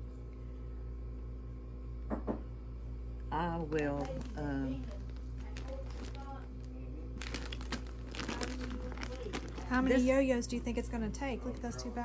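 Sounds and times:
plastic bag crinkling: 3.6s - 12.0s.

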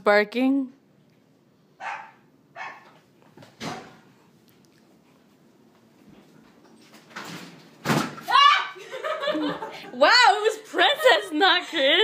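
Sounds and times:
dogs barking: 1.8s - 3.0s.

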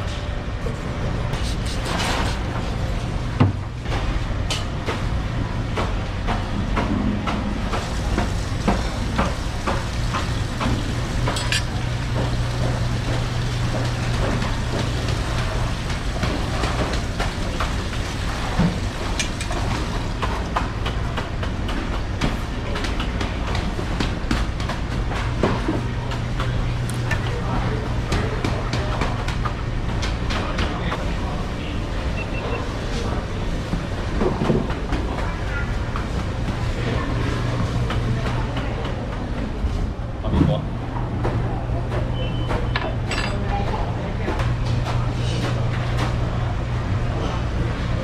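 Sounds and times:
shop background hum and hiss: 0.0s - 48.0s.

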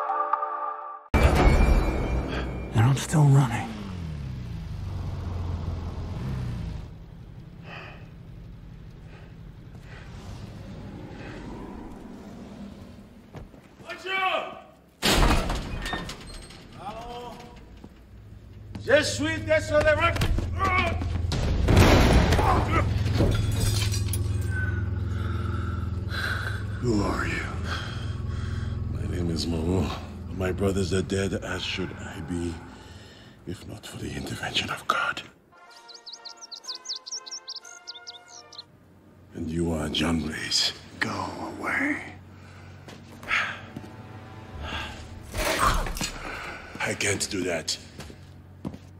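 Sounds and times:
low steady rumble: 23.5s - 33.4s
birds chirping: 34.0s - 38.7s
sustained background music chord: 35.5s - 38.7s.

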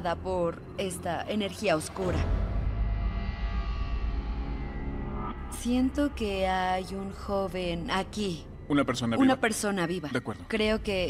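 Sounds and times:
low rumbling drone: 0.0s - 11.0s.

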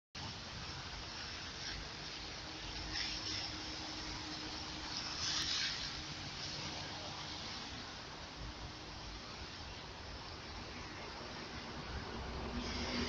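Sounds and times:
steady outdoor hiss: 0.2s - 13.0s.

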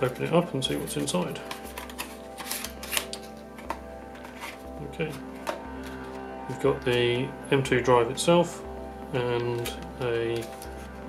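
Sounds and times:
cardboard and plastic crackling: 0.0s - 6.1s
background music with bass pulse: 0.0s - 11.0s.

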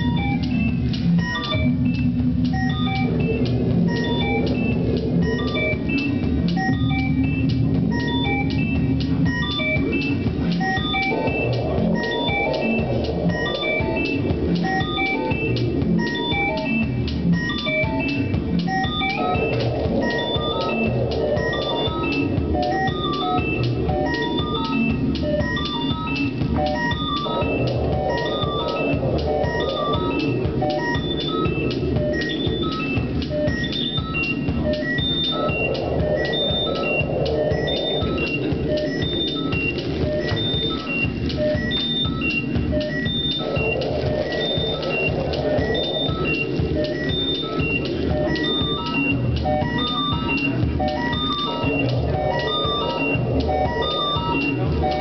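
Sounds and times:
steady electronic beat: 0.0s - 55.0s.

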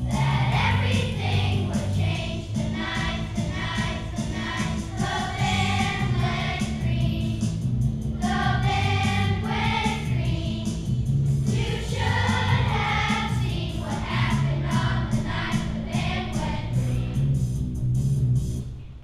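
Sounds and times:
children's choir singing: 0.0s - 7.6s, 8.2s - 10.8s, 11.5s - 17.3s.

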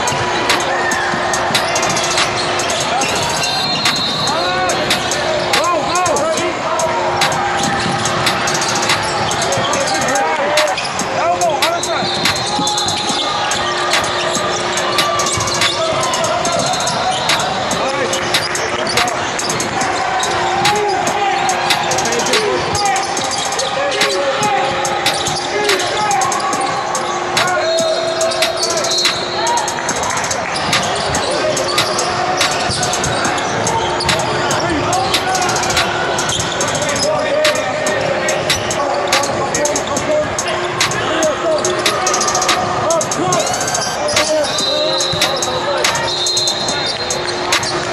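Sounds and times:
sneakers squeaking: 0.0s - 47.9s
spectators talking: 0.0s - 47.9s.

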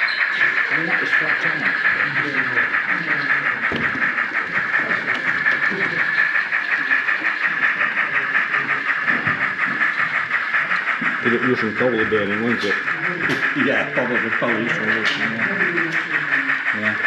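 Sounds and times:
faint crowd chatter: 0.0s - 17.0s
model steam locomotive chuffing: 0.0s - 17.0s.

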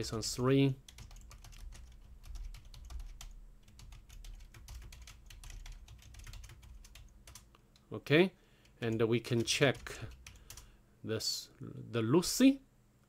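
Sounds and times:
steady low hum: 0.0s - 13.0s
keyboard typing: 0.9s - 7.6s, 8.6s - 10.7s.

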